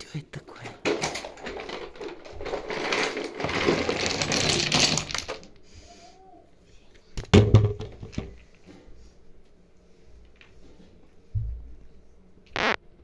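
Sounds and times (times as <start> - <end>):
plastic toys rattling: 0.4 - 5.6.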